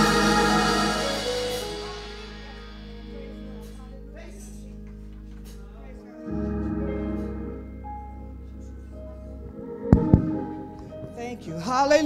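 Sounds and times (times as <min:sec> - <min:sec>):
church organ chord: 0:00.0 - 0:11.8.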